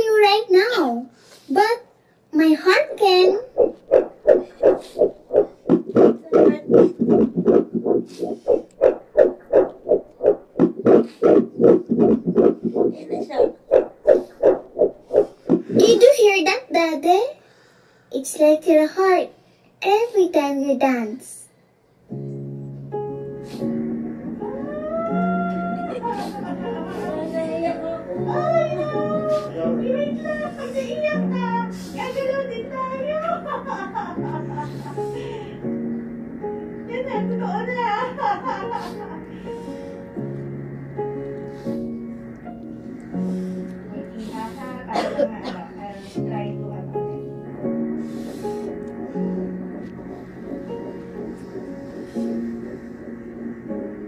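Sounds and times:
fetal heartbeat on doppler: 2.4s - 16.2s, 45.7s - 54.0s.

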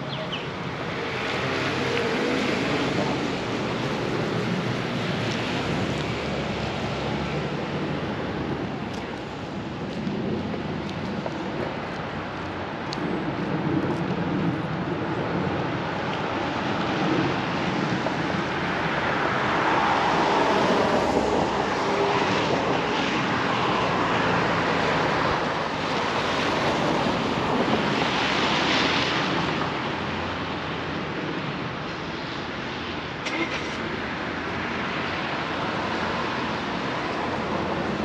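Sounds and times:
traffic on wet asphalt: 0.0s - 38.0s.

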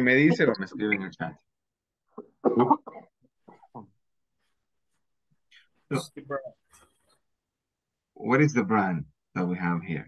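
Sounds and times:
person coughing: 2.4s - 3.2s.

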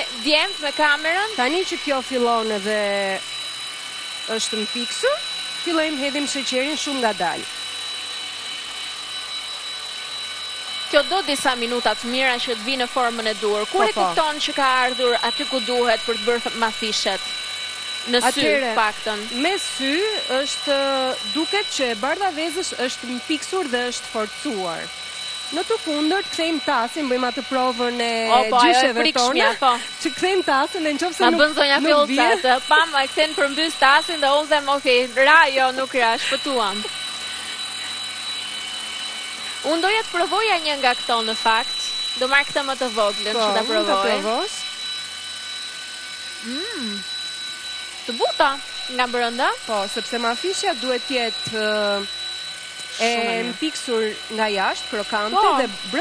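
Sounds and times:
stand mixer whining: 0.0s - 56.0s.

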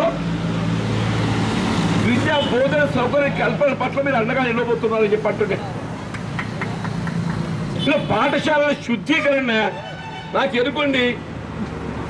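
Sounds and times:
traffic noise: 0.0s - 12.0s
man speaking into microphone: 2.0s - 5.8s, 7.8s - 11.2s.

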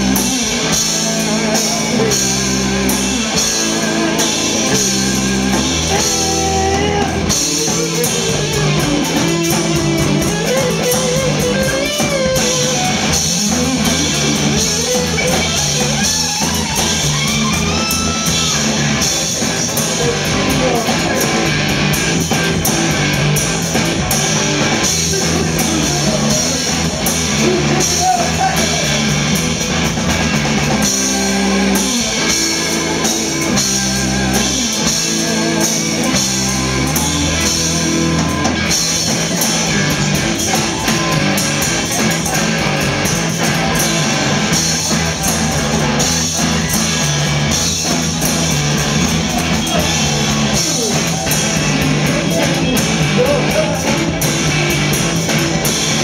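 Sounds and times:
person singing: 0.0s - 15.9s, 19.0s - 21.6s, 24.7s - 29.2s, 30.8s - 43.1s, 49.3s - 54.6s
bass guitar: 0.0s - 56.0s
drum kit: 0.0s - 56.0s
electric guitar: 0.0s - 56.0s.

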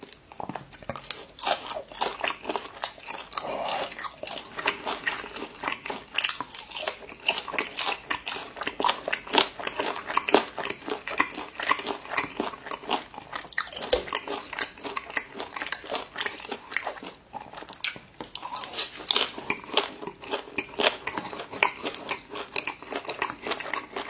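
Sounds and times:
person chewing food: 0.0s - 24.0s.

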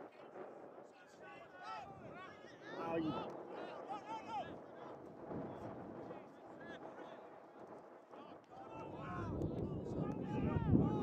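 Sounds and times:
wind rumble on microphone: 8.6s - 11.0s.

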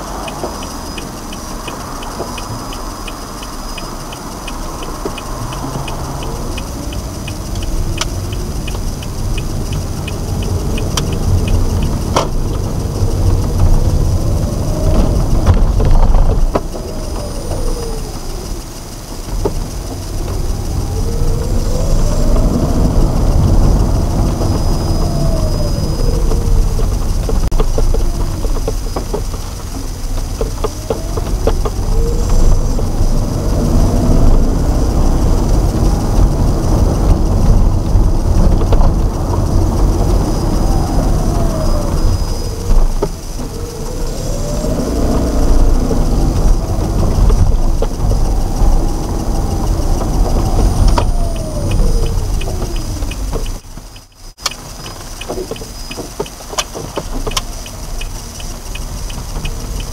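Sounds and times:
car engine and tyre rumble: 0.0s - 59.9s
small clicks and rattles: 0.0s - 59.9s.

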